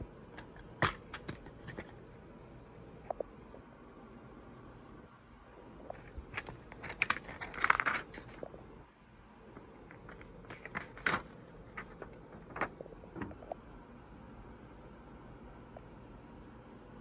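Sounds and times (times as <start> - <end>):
paper rustle: 0.4 - 2.0, 5.9 - 8.4, 9.6 - 13.4.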